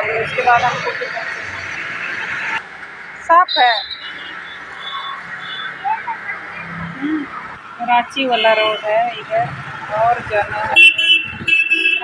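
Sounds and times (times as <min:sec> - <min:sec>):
vehicle engine hum: 0:00.0 - 0:12.0.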